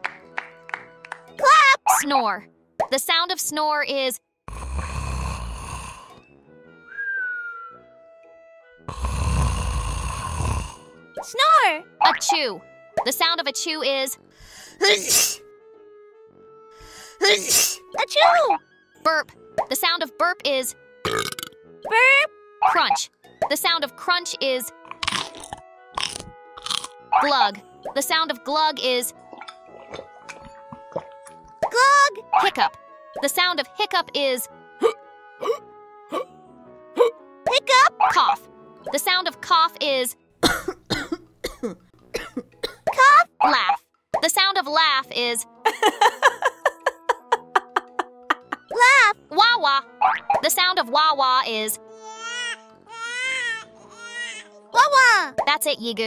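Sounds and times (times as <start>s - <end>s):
soft background music: 0.0s - 56.0s
woman speaking: 1.4s - 4.2s, 11.3s - 14.2s, 18.0s - 20.7s, 21.9s - 24.7s, 27.2s - 29.1s, 31.8s - 34.5s, 37.5s - 40.1s, 43.0s - 45.5s, 46.4s - 51.8s, 54.8s - 56.0s
baby crying: 52.0s - 54.5s.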